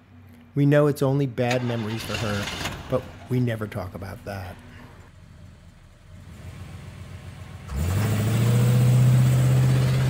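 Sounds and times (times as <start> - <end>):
vehicle engine starting: 1.4 - 10.0.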